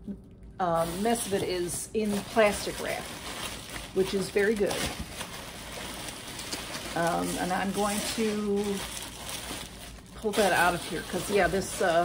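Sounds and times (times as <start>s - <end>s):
packaging rustling in a box: 0.8s - 12.0s.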